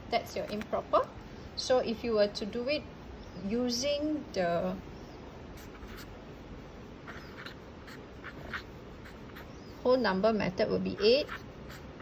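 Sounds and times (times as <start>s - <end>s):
marker squeaking on paper: 5.0s - 12.0s.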